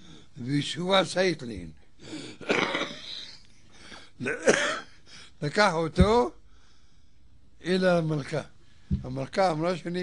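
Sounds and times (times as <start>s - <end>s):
man breathing: 3.7s - 4.2s.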